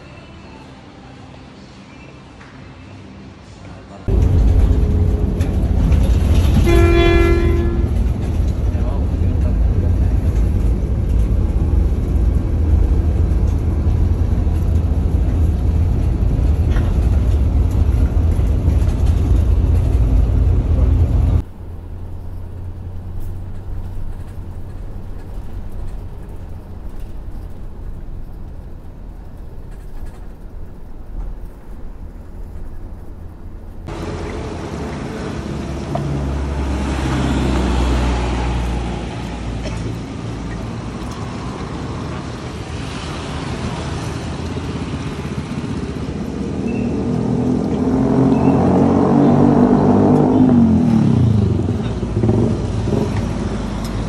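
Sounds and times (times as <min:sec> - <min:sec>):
bus engine rumble: 0:00.0 - 0:54.0
horn: 0:06.1 - 0:08.4.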